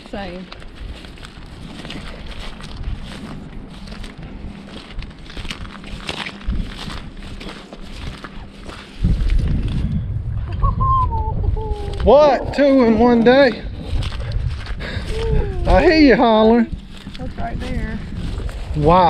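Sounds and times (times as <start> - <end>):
footsteps through grass and mud: 0.0 - 10.2, 11.7 - 19.0
wind buffeting microphone: 0.0 - 19.0.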